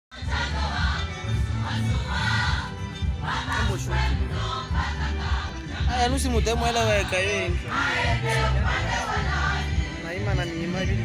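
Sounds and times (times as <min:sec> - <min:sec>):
choir singing: 0:00.1 - 0:11.0
music with heavy bass: 0:00.2 - 0:11.0.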